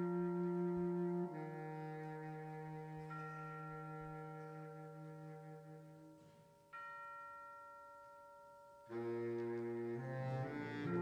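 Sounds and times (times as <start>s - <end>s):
struck bell-like tone: 2.9s - 11.0s.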